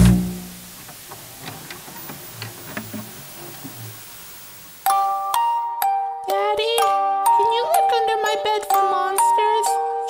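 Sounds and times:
low dark drone: 0.0s - 0.7s
bell-like chiming melody: 4.8s - 10.0s.

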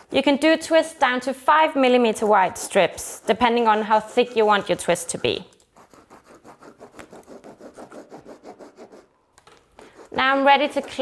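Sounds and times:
pen scratching on leather: 0.0s - 0.6s, 1.8s - 9.1s, 9.8s - 11.0s.

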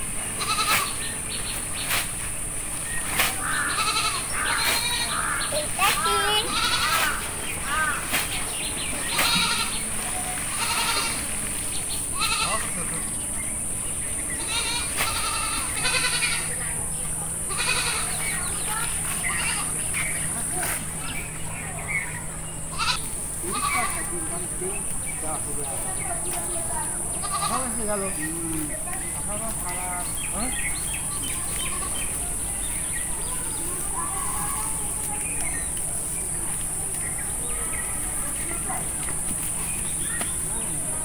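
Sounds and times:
high insect buzz: 0.0s - 21.3s, 21.9s - 41.0s
goat bleating: 0.4s - 1.0s, 3.6s - 5.4s, 6.0s - 7.2s, 9.1s - 9.9s, 10.5s - 11.3s, 12.1s - 12.8s, 14.4s - 16.6s, 17.5s - 19.8s, 22.7s - 24.1s, 27.2s - 27.8s.

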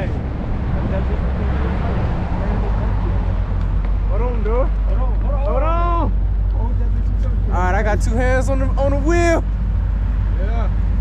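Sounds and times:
wind rushing over microphone: 0.0s - 5.4s
engine and road rumble: 0.0s - 11.0s.

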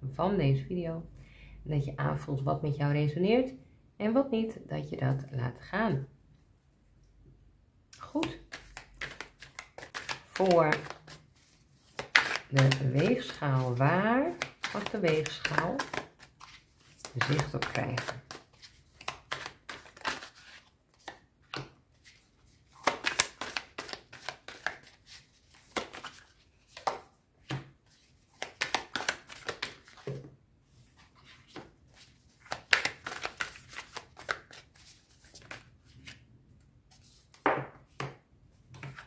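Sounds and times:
cards being shuffled: 8.2s - 30.2s, 31.0s - 36.2s.

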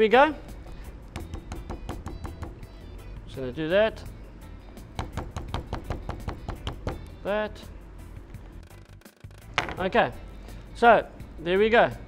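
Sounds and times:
quiet background music: 0.0s - 12.0s
knocks on plastic cutting board: 9.6s - 9.8s.

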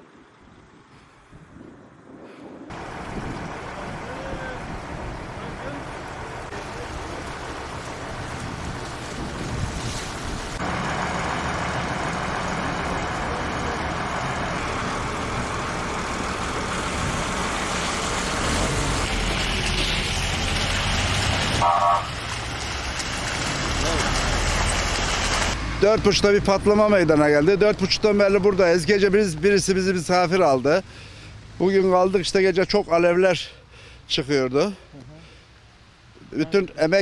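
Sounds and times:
highway traffic rumble: 0.0s - 37.0s
wind on microphone: 0.5s - 5.7s, 8.0s - 10.6s.

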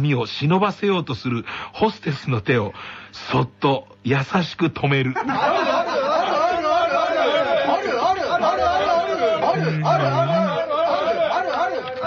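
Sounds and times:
crowd chanting: 5.4s - 12.0s.

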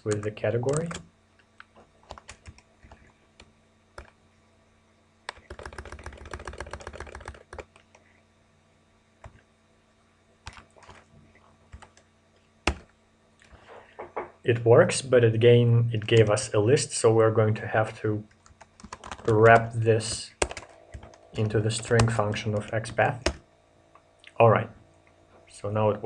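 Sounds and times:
typing on computer keyboard: 0.1s - 1.0s, 1.6s - 3.1s, 5.3s - 8.0s, 10.5s - 11.0s, 11.7s - 12.0s, 12.7s - 12.9s, 18.4s - 19.7s, 20.4s - 21.2s.

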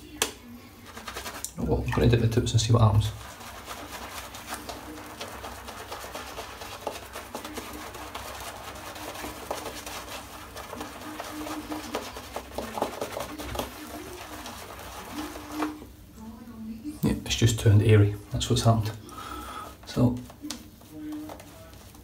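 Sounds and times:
shaving brush swishing lather: 0.7s - 16.0s, 19.7s - 22.0s
man talking: 1.6s - 3.2s, 17.0s - 19.0s, 19.9s - 20.3s.

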